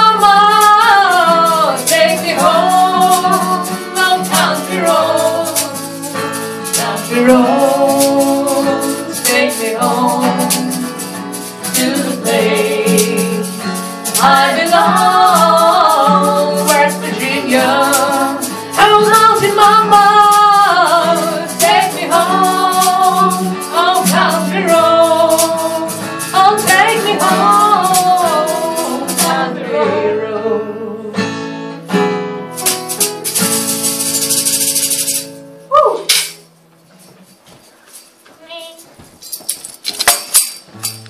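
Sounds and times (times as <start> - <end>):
women singing: 0.0 - 31.2
acoustic guitar strumming: 0.0 - 37.5, 40.1 - 41.0
high hissing noise: 32.5 - 38.2.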